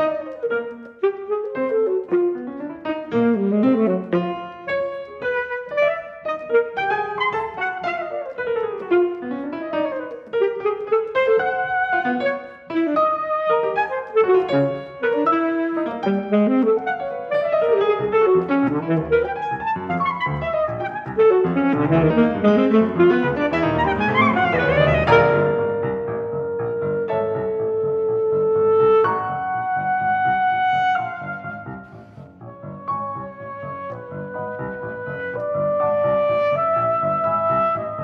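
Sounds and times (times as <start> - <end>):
piano chords: 0.0 - 38.0
saxophone melody: 0.0 - 38.0.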